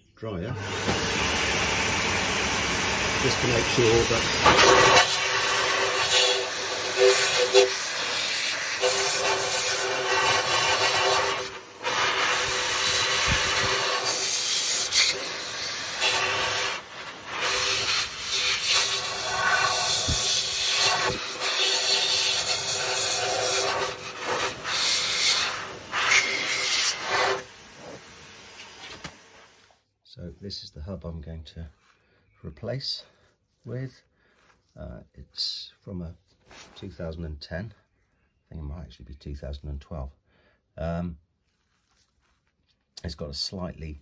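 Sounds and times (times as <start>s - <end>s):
electric dryer blowing air: 0.6s - 29.7s.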